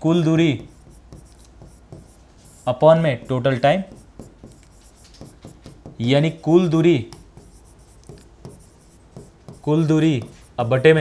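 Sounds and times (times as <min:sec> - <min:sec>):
person speaking: 0:00.0 - 0:11.0
stylus scratching on pen display: 0:00.3 - 0:11.0.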